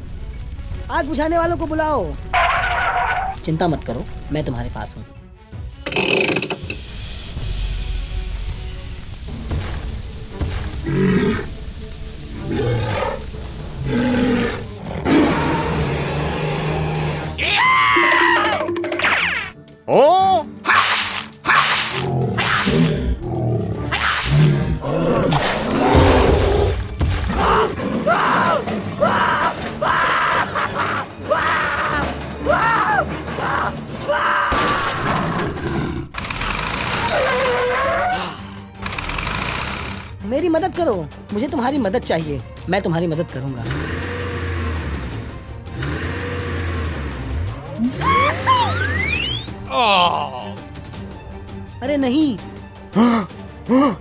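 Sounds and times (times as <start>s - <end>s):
background music: 0.0s - 54.0s
short spraying bursts of water: 6.7s - 14.8s
dinosaur roar: 10.8s - 11.6s, 12.4s - 18.8s, 21.9s - 32.6s, 34.8s - 40.1s, 43.7s - 48.8s
voice exclaiming: 47.8s - 48.9s, 49.7s - 50.6s
rising tone: 48.0s - 49.6s.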